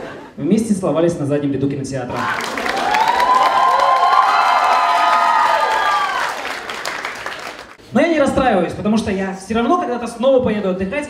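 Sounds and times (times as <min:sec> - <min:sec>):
audience applauding: 0:02.2 - 0:07.8.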